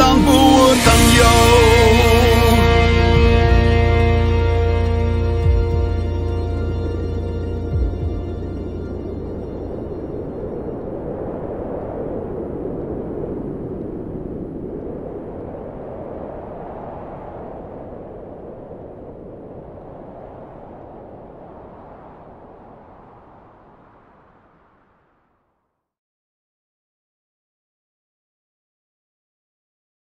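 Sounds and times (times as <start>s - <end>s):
low wash of sound: 0.0s - 25.3s.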